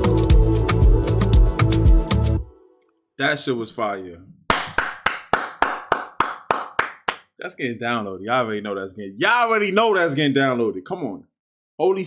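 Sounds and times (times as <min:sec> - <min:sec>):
person clapping hands: 0:04.5 - 0:07.3.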